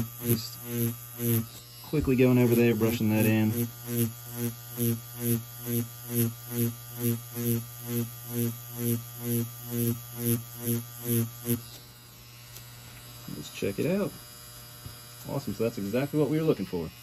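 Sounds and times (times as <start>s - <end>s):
tattoo machine buzzing: 0.0s - 17.0s.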